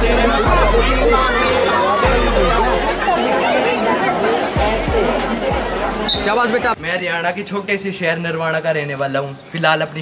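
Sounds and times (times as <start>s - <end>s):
background music: 0.0s - 7.0s
crowd chattering: 0.0s - 10.0s.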